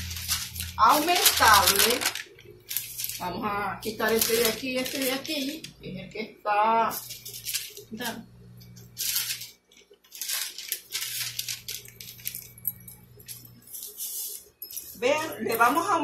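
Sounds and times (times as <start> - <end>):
paper sheets rustling: 0.0 - 5.8, 6.9 - 8.2, 8.9 - 15.9.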